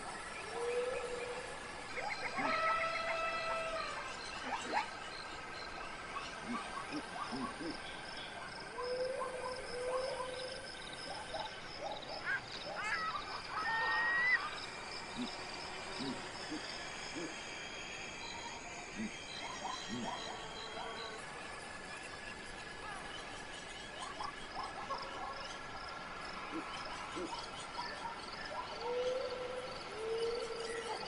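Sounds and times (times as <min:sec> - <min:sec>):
open-air ambience: 0:00.0 - 0:31.0
thin steady tone: 0:00.0 - 0:31.0
long animal call: 0:00.6 - 0:04.8
rising and falling animal call: 0:00.6 - 0:04.9, 0:12.2 - 0:14.6.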